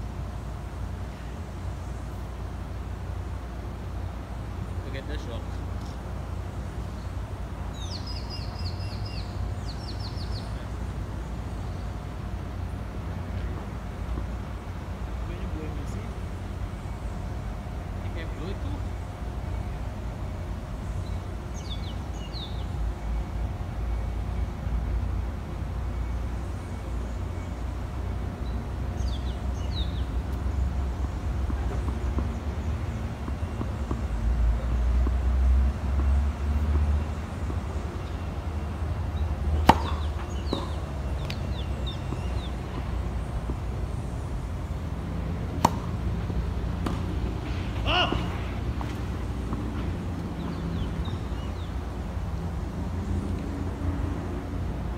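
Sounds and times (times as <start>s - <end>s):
low outdoor rumble: 0.0s - 54.9s
tennis ball struck by racket: 39.6s - 42.9s, 45.5s - 51.5s.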